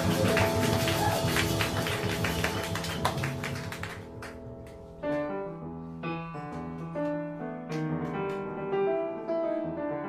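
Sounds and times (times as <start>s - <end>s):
jazz piano trio playing: 0.0s - 10.0s.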